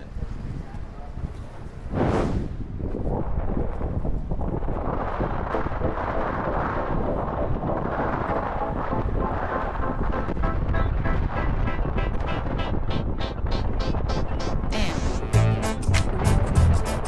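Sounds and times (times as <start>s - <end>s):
gusty wind buffeting microphone: 0.0s - 17.0s.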